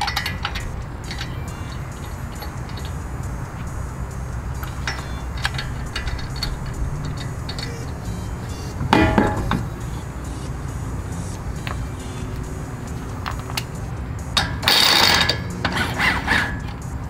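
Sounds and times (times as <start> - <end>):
ringing metal clank: 0.0 - 10.0, 14.4 - 16.6
metal lug nuts clinking: 0.0 - 17.0.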